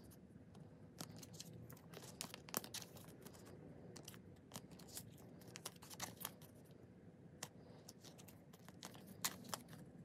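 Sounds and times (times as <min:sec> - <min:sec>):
plastic sleeves clicking and crinkling: 0:01.0 - 0:06.6, 0:07.4 - 0:09.8.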